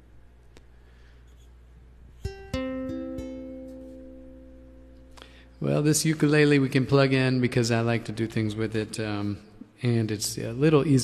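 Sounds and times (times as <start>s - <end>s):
ukulele strings plucked: 2.2s - 5.4s.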